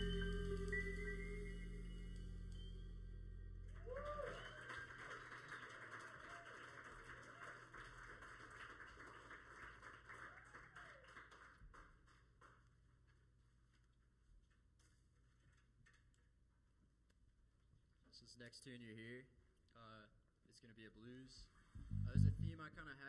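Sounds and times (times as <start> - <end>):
jazz ensemble chord: 0.0 - 3.7.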